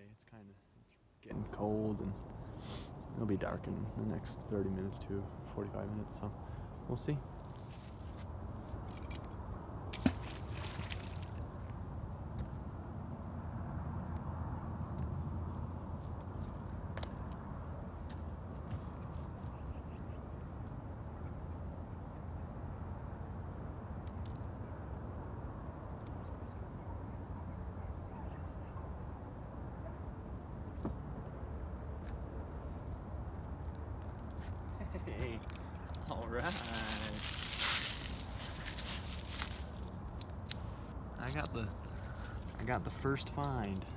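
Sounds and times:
low wind rumble: 20.4 - 43.9.

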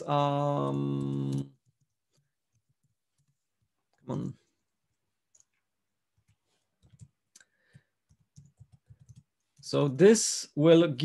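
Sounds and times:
faint keyboard keystrokes: 6.2 - 9.6.

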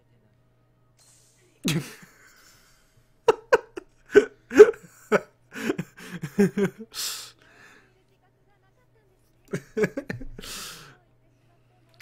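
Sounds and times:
man laughing: 1.7 - 7.3, 9.5 - 10.8.

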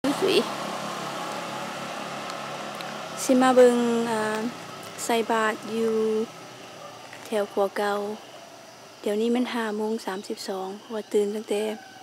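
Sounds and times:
distant motorbikes humming: 0.0 - 12.0.

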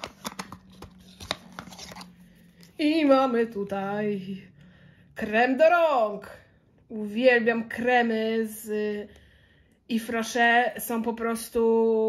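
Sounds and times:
paper gift box being opened: 0.0 - 2.8
woman speaking: 2.7 - 4.6, 5.2 - 9.1, 9.9 - 12.0.

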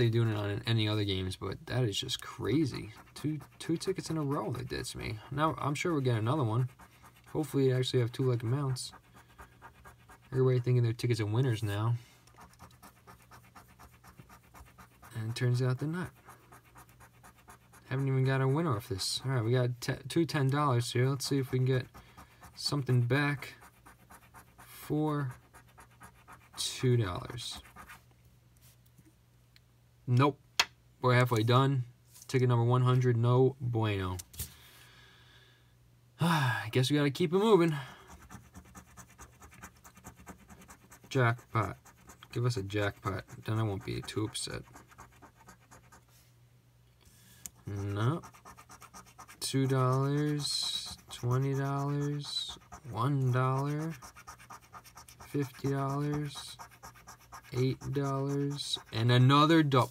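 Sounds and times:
coin scratching lottery ticket: 12.3 - 17.9, 38.1 - 46.0, 47.6 - 59.2.

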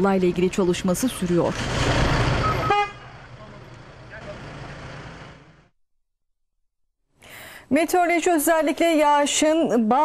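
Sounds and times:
steady traffic noise: 0.0 - 5.7.

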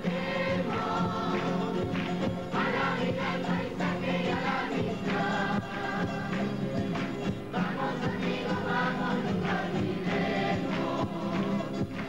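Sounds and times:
group singing in chorus: 0.0 - 12.0
strummed acoustic guitars: 0.0 - 12.0.

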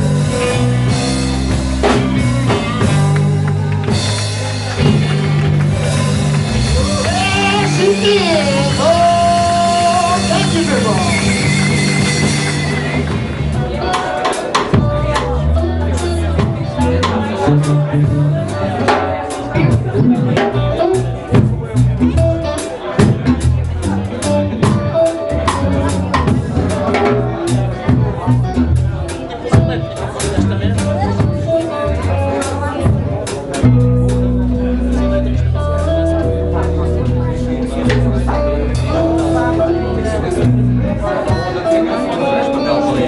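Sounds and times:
bass sliding down: 0.0 - 43.0
live blues-rock band: 0.0 - 43.0.

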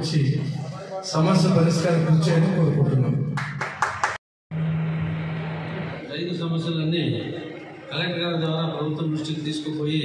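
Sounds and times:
crowd hand claps: 3.4 - 4.2
steady low hum: 4.5 - 8.9.

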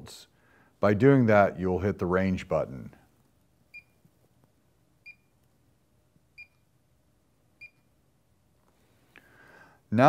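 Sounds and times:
multimeter high beeps: 3.7 - 4.0, 5.0 - 5.4, 6.4 - 6.7, 7.6 - 8.0.

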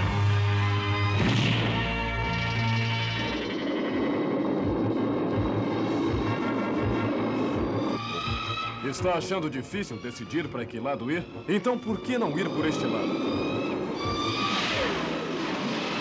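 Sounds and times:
cartoon background music: 5.7 - 16.0
rising tones: 11.6 - 16.0.

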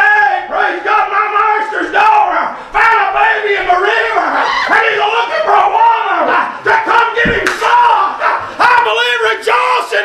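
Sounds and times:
congregation calling out: 0.0 - 10.0
preacher shouting half-sung phrases: 0.0 - 10.0.

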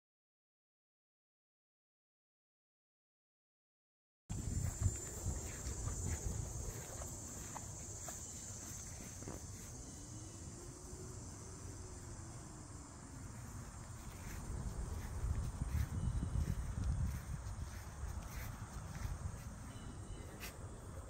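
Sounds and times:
wind on microphone: 4.3 - 7.6, 14.1 - 20.5
soft steps on grass: 4.3 - 10.0, 13.4 - 20.6
high-pitched insect drone: 4.3 - 21.0.

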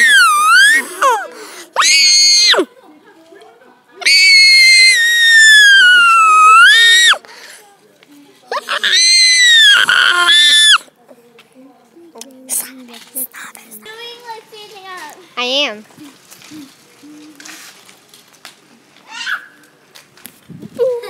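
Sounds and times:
girl's high-pitched squeals: 0.0 - 2.7, 4.0 - 7.2, 8.5 - 10.8, 19.1 - 19.6.

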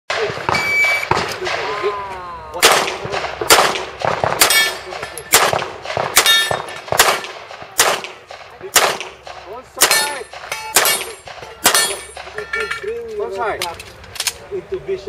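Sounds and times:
shot timer beep: 0.5 - 1.1
handgun shots: 2.6 - 12.4
steel targets ringing: 4.4 - 5.4, 6.2 - 6.8, 9.8 - 13.0.

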